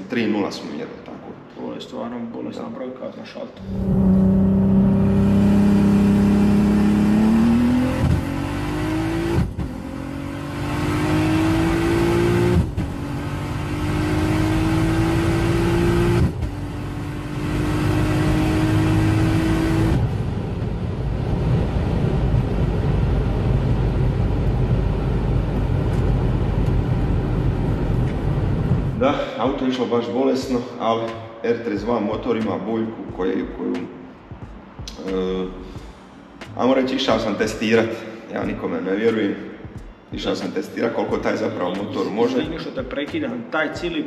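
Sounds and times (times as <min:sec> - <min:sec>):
car engine revving through gears: 0:03.6 - 0:29.0
wind and road noise: 0:03.6 - 0:29.2.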